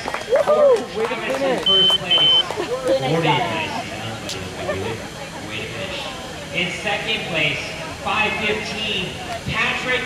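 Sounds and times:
people talking: 0.6 - 10.0
short high electronic beeps: 1.7 - 2.4.

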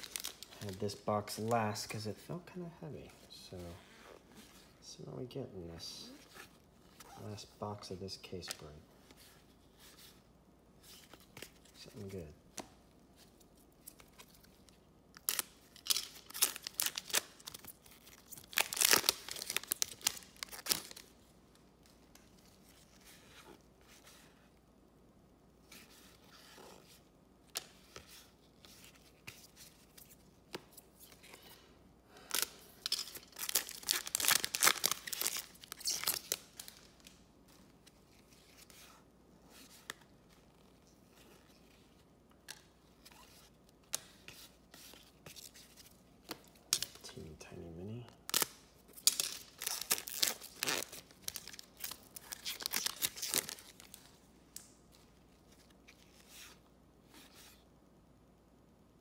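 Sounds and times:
wrappers tearing and crinkling: 0.0 - 2.0, 15.2 - 21.1, 32.2 - 37.2, 48.2 - 54.6.

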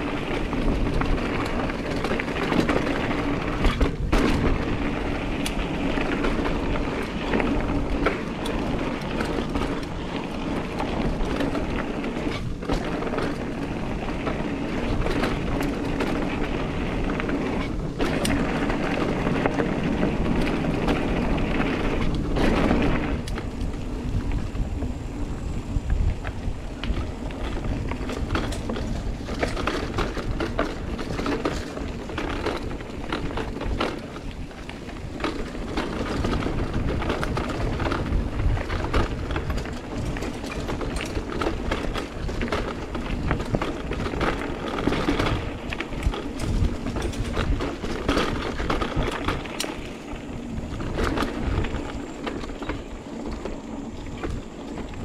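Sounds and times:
bike rattling and knocking: 0.0 - 55.0
bike tyre noise on dirt: 0.0 - 55.0
wind buffeting microphone: 0.0 - 55.0.

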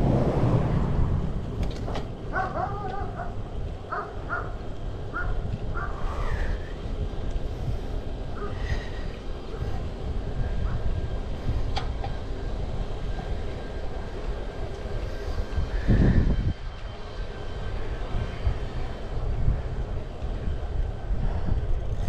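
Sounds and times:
bicycle tyre rumble on road: 0.0 - 22.0
wind buffeting microphone: 0.0 - 22.0.

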